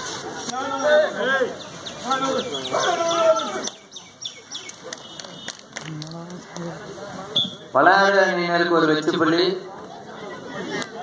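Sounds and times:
men shouting long calls: 0:02.1 - 0:03.7.

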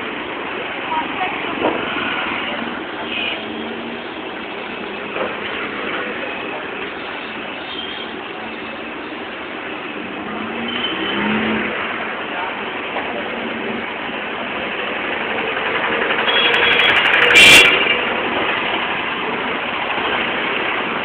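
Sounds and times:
loud traffic burst: 0:00.0 - 0:21.0
vehicle engines running: 0:00.0 - 0:21.0.

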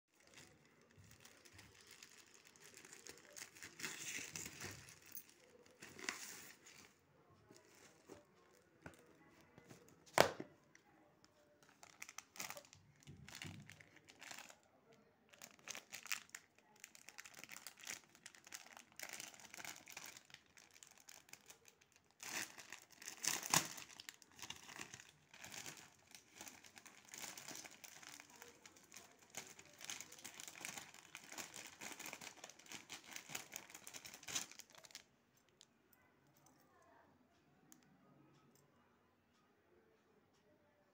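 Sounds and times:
plastic wrapping crinkling and tearing: 0:00.1 - 0:07.0, 0:11.5 - 0:14.7, 0:15.3 - 0:35.1.

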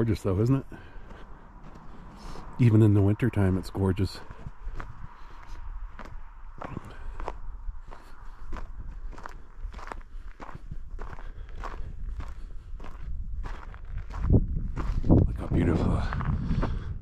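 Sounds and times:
footsteps on snowy dirt path: 0:00.0 - 0:17.0
low rumble: 0:00.0 - 0:17.0.

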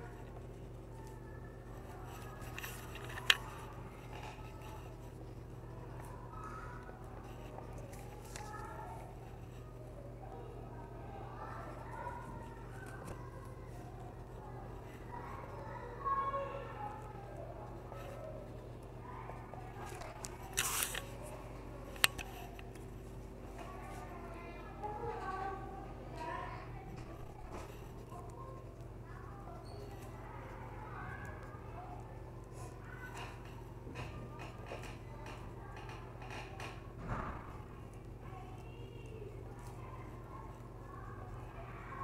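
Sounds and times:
scratchy rustle: 0:00.0 - 0:09.9, 0:11.4 - 0:24.2
low room hum: 0:00.0 - 0:42.0.

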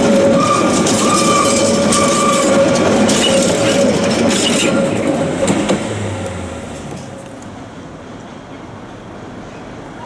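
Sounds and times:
wheels clicking on track: 0:00.0 - 0:07.6
train wagons rolling on rails: 0:00.0 - 0:10.0.

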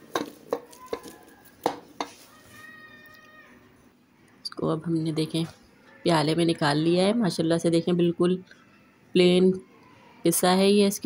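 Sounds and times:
pestle pounding in metal pot: 0:00.0 - 0:02.2.

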